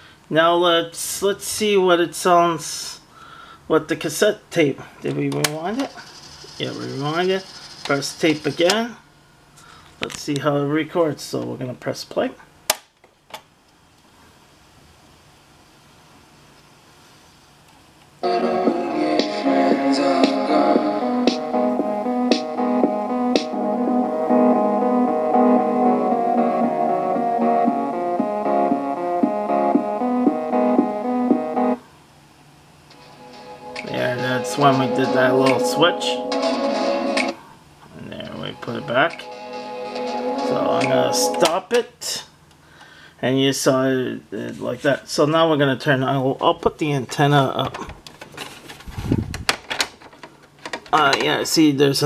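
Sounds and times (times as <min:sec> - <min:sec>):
faint background noise: 0:00.0 - 0:21.9, 0:37.0 - 0:52.0
instrumental music from small speakers: 0:18.2 - 0:31.8, 0:33.0 - 0:37.4, 0:38.6 - 0:41.5.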